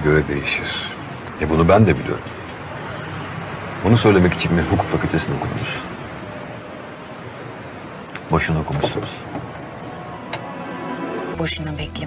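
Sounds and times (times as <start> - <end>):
drama background music: 9.8 - 12.0.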